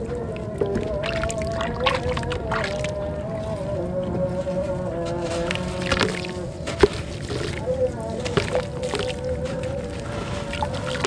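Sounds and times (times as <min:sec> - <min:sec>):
background music with held notes: 0:00.0 - 0:11.0
water splashing and dripping: 0:00.0 - 0:11.0.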